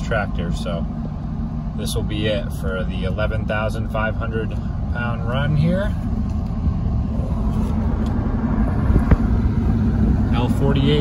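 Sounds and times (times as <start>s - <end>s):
engine and road rumble: 0.0s - 11.0s.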